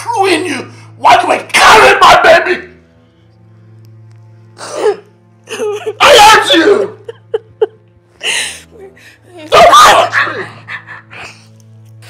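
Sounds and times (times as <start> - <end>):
low sustained background score: 0.0 - 12.0
woman sobbing: 4.6 - 9.0.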